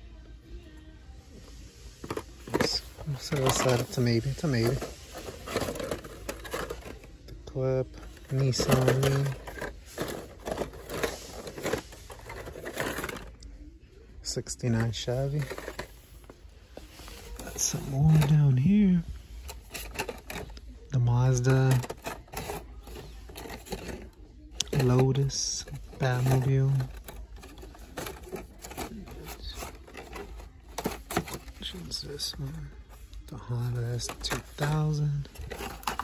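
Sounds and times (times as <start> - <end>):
plastic packs clacking and rustling: 2.0 - 13.4, 14.5 - 36.0.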